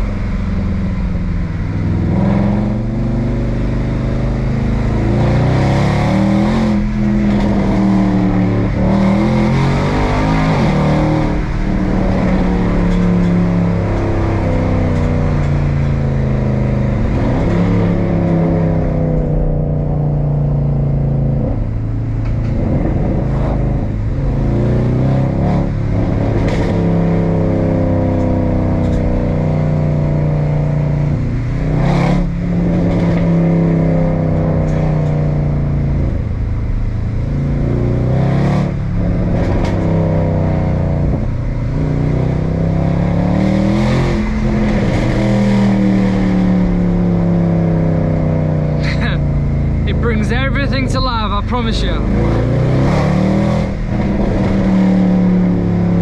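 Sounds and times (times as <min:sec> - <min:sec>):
car engine revving through gears: 0:00.0 - 0:56.0
sharp cracks at gear changes: 0:05.2 - 0:19.0, 0:25.6 - 0:27.4, 0:28.0 - 0:29.9, 0:31.0 - 0:56.0.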